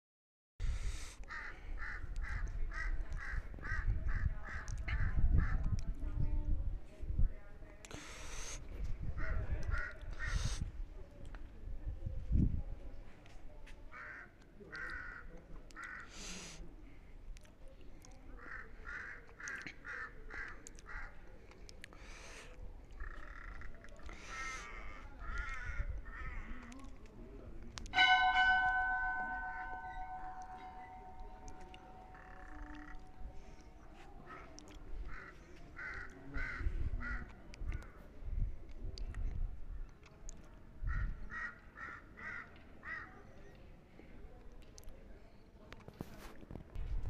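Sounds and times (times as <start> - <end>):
bell ringing: 28.0 - 33.0.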